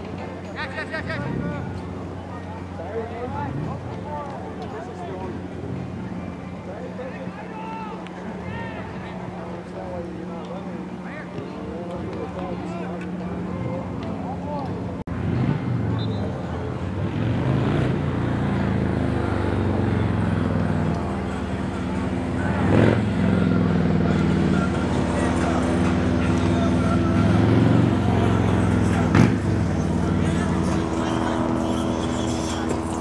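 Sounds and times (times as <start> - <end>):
engine running steadily: 0.0 - 33.0.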